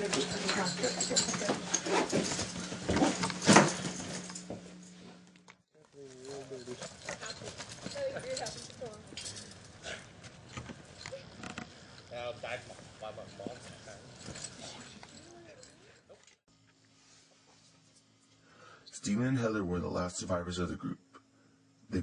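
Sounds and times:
low hum: 0.0 - 16.0
rustling and clattering of belongings: 0.0 - 16.4.

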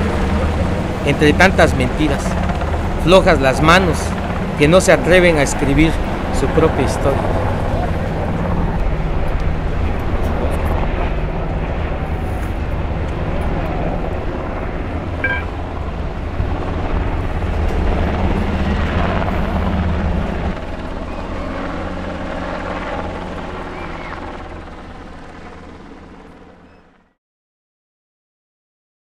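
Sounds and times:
low engine drone: 0.0 - 27.0
outdoor background noise: 7.1 - 27.0.

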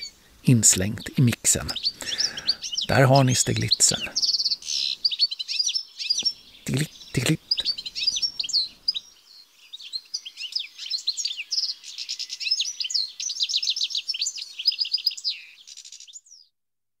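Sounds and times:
goldfinch singing: 0.0 - 16.5.

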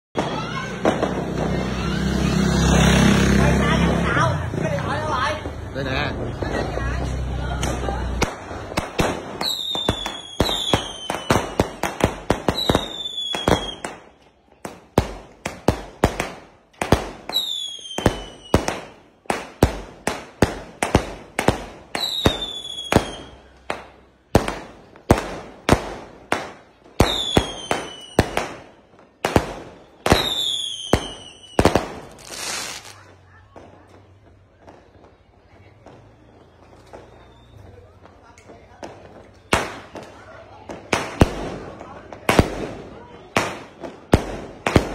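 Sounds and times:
fireworks bursting: 0.1 - 44.9
motorbike engine passing: 1.1 - 8.2
firework whistles falling: 36.7 - 37.8.

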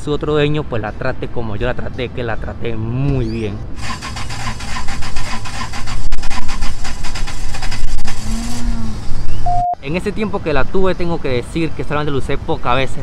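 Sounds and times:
loud vehicle engine: 3.6 - 9.5
short beep: 9.4 - 9.8.

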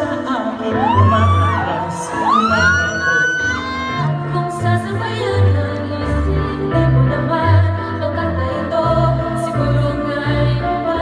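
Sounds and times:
man singing into microphone: 0.0 - 4.3.

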